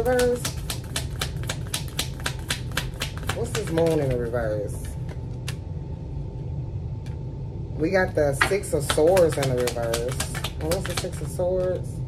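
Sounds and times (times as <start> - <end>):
cards being shuffled: 0.0 - 4.3, 8.8 - 11.8.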